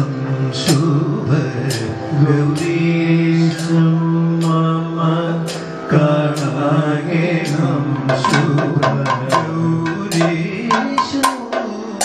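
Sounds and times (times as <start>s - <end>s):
man singing long melodic lines: 0.0s - 12.0s.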